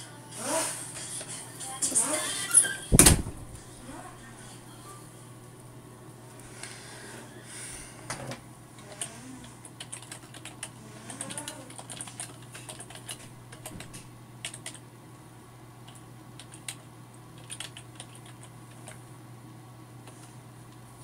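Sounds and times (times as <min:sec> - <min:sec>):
computer keyboard typing: 0:08.9 - 0:14.8, 0:15.9 - 0:19.0.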